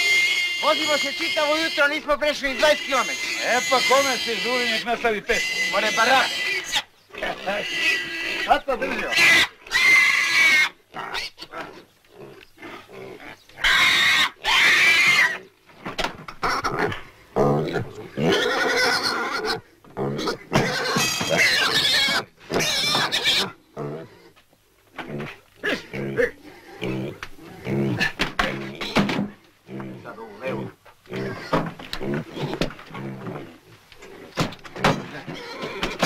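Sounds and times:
piglets squealing: 0.0 - 15.5, 16.4 - 17.0, 17.7 - 23.6, 30.3 - 31.6, 35.1 - 36.0.

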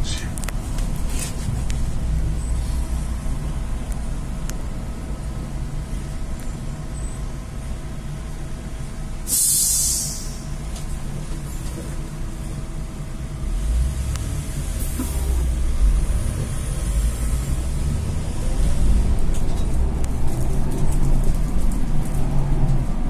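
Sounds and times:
trolleybus pulling away: 0.0 - 23.0.

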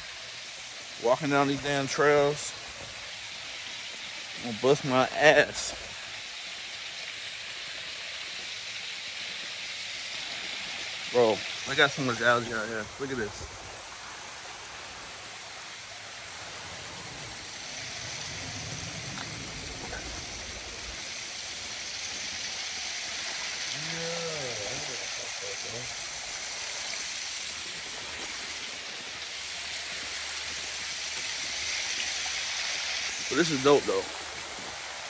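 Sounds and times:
waterfall rushing over rocks: 0.0 - 35.0
person speaking: 23.7 - 25.9.

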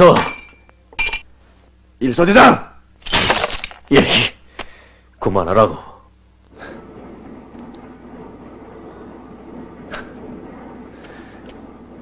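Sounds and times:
glass clinking: 0.2 - 1.3.

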